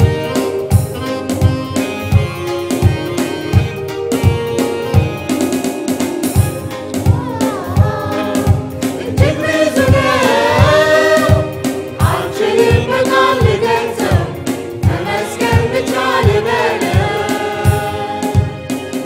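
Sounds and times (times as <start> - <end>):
band playing: 0.0 - 19.0
choir singing gospel: 7.6 - 19.0.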